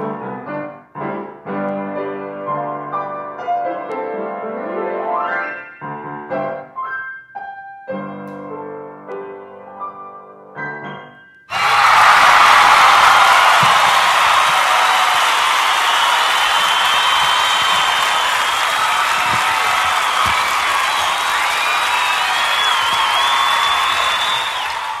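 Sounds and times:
crowd cheering and applauding: 11.5 - 25.0
whistles and whoops: 11.5 - 25.0.

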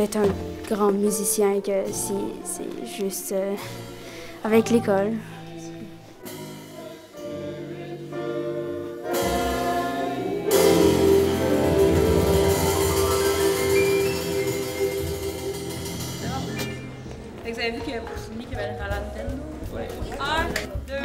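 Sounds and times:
jazz trio playing: 0.0 - 21.0
children's choir singing: 6.6 - 16.4.

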